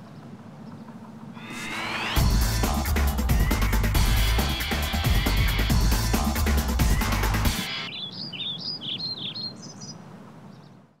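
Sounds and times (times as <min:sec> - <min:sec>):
songbird chirping: 0:00.0 - 0:11.0
soundtrack music: 0:01.4 - 0:07.7.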